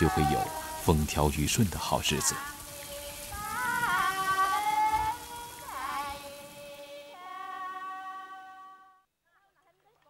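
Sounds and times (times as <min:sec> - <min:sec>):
rain hiss: 0:00.0 - 0:08.9.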